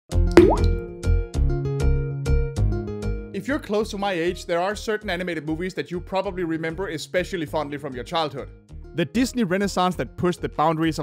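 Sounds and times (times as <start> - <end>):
rising bloop sound effect: 0.4 - 0.8.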